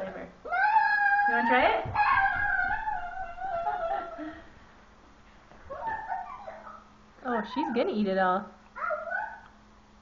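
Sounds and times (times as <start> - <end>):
baby squealing: 0.5 - 4.2.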